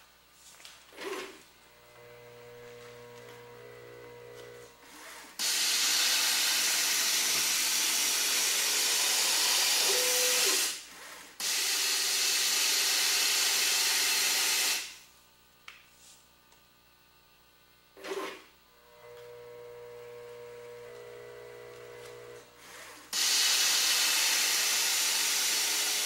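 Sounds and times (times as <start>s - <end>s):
low machine hum: 1.5s - 5.4s.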